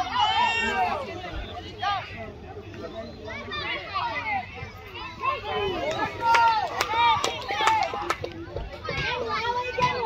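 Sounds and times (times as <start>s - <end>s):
people shouting and calling out: 0.0s - 10.0s.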